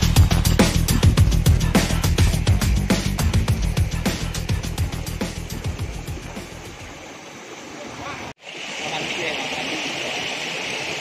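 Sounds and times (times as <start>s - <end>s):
high-pitched hiss: 0.0s - 11.0s.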